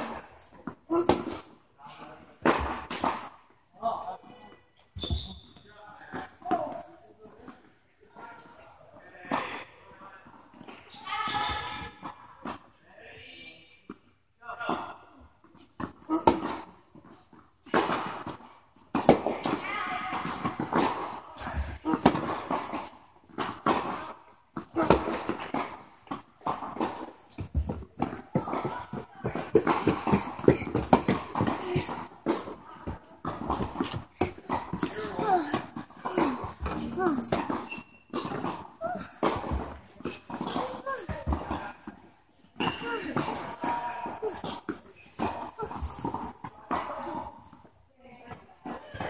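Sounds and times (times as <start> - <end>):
tennis balls struck by racquets: 0.0 - 1.6, 2.4 - 3.4, 14.7 - 49.0
tennis balls bouncing: 2.4 - 3.4, 15.5 - 49.0.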